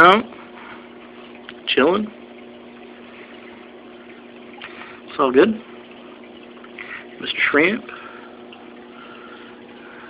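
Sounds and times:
aquarium pump hum: 0.0s - 10.0s
water circulating hiss: 0.0s - 10.0s.

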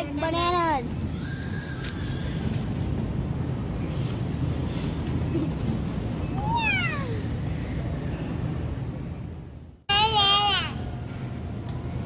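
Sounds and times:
child squealing: 6.4s - 7.3s.

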